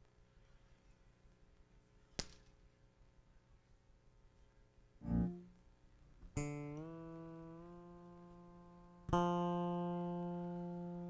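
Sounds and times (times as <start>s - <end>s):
electric bass guitar notes: 5.0s - 5.5s, 6.4s - 11.0s.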